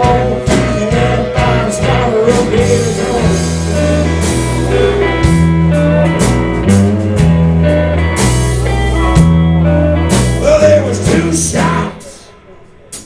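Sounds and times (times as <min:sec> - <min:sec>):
pedal steel guitar: 0:00.0 - 0:12.2
bass: 0:00.0 - 0:13.0
drums: 0:00.0 - 0:13.0
electric guitars: 0:00.0 - 0:13.0.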